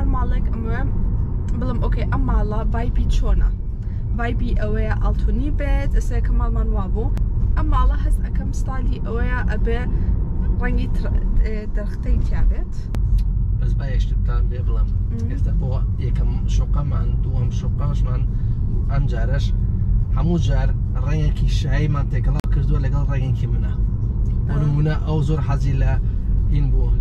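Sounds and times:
conversation: 0.0 - 27.0
road and tyre rumble in car: 0.0 - 27.0.

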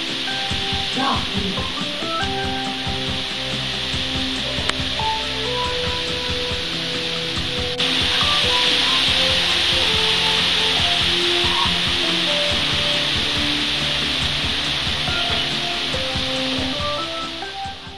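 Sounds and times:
faint music: 0.0 - 17.9
heavy rain hissing: 0.0 - 17.9.

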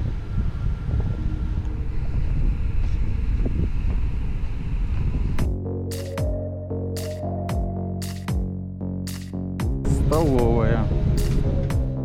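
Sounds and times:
electronic background music: 0.0 - 4.5, 5.3 - 12.0
wind buffeting microphone: 0.0 - 5.6.

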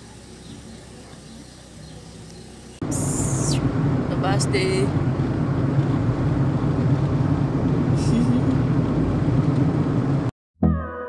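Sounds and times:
car road noise from inside: 0.0 - 10.3.

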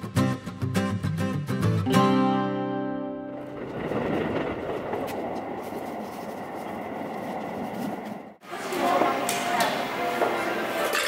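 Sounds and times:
train running rumble: 3.4 - 9.2.

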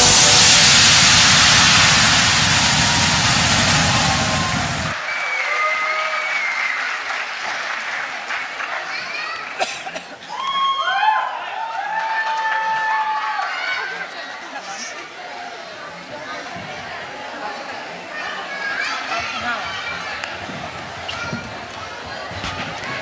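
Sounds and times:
audience applause and cheering: 0.0 - 9.5, 10.2 - 14.4.

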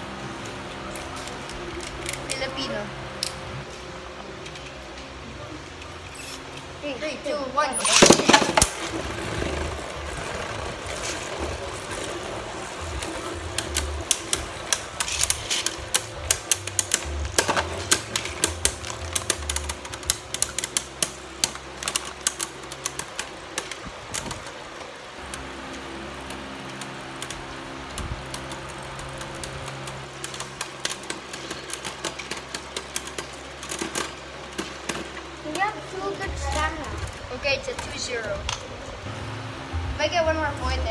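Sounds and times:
spinning tops clacking: 7.7 - 35.6
spinning tops whirring: 7.7 - 40.8.

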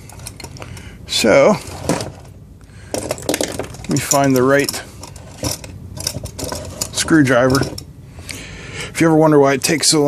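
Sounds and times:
hand tools clattering: 0.0 - 0.7, 2.9 - 7.8.

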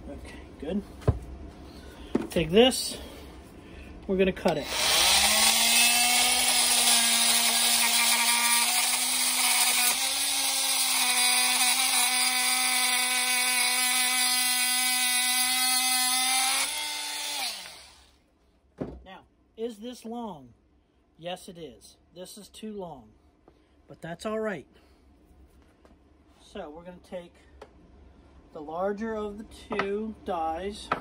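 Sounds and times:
oscillating multi-tool cutting bolt: 4.6 - 18.1.

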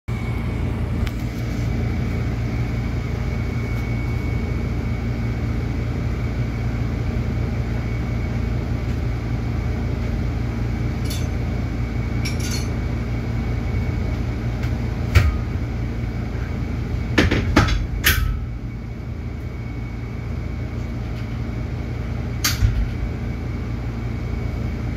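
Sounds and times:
thin high whine: 0.1 - 14.2
low machine hum: 0.1 - 24.9.

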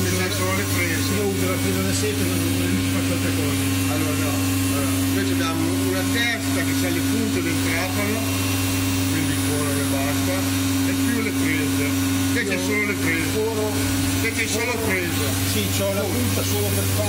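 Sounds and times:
machine humming: 0.0 - 17.0.

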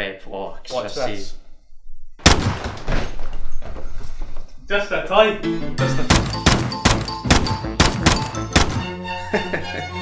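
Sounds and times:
handgun shots: 6.1 - 8.9.

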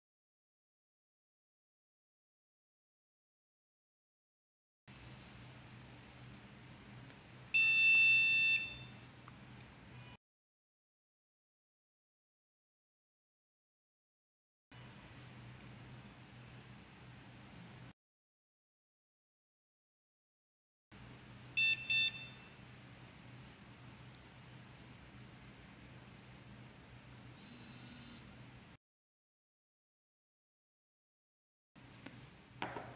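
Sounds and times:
faint steady hum: 4.9 - 10.2, 14.8 - 17.9, 21.0 - 28.8
high-pitched electronic beep: 21.6 - 22.6.

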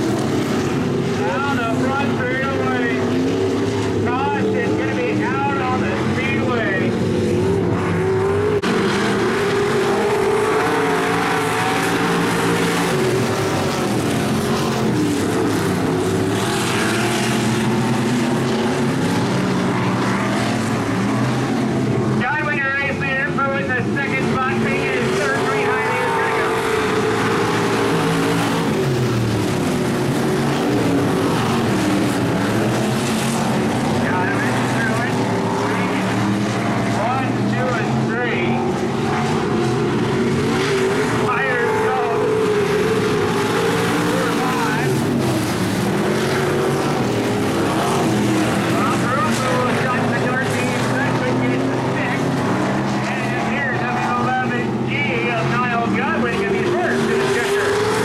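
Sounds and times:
race car engines passing: 0.0 - 58.0.

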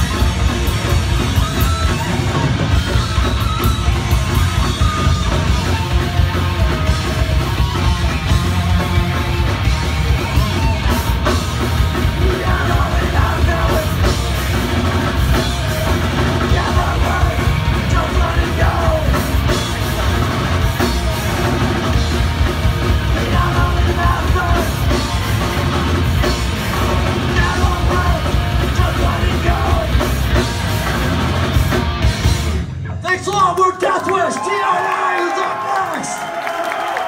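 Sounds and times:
heavy rock band playing: 0.0 - 33.8
singer yelling: 12.1 - 14.1, 16.3 - 20.3, 33.0 - 37.0
shouted vocal: 33.8 - 37.0.

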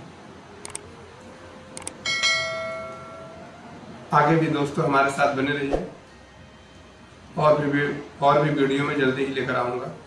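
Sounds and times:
bell ding: 2.1 - 3.4.

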